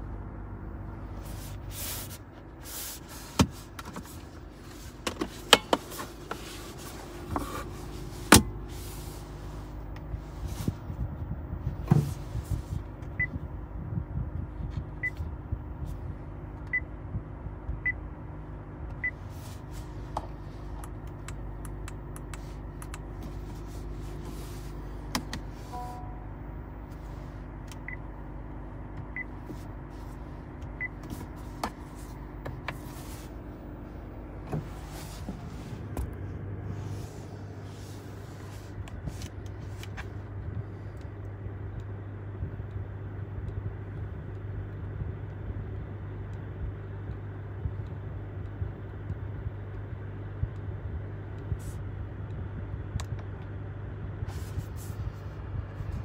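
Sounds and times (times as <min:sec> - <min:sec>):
low cabin hum: 0:00.0 - 0:56.0
short high touchscreen beeps: 0:25.7 - 0:26.3.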